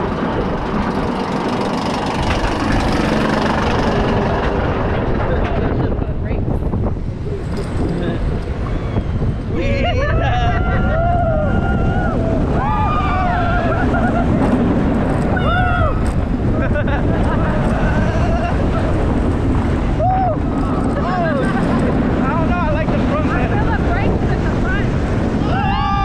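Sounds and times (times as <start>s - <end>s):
roller coaster rumble: 0.0s - 26.0s
wind rushing over microphone: 0.0s - 26.0s
riders screaming and whooping: 7.2s - 22.4s, 25.2s - 26.0s.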